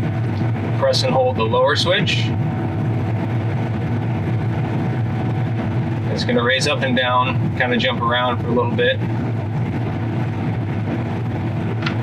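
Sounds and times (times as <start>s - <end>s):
combine engine droning: 0.0s - 12.0s.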